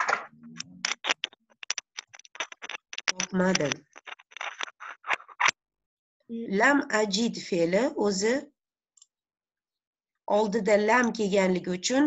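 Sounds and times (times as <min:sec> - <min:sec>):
keyboard and mouse clicks: 0:00.0 - 0:05.5.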